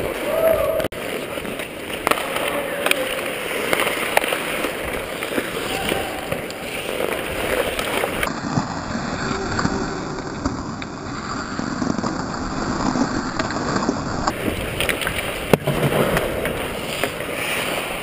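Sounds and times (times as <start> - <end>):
skates scraping on ice: 0.0 - 18.0
hockey sticks clacking on puck: 0.8 - 8.4, 9.2 - 18.0.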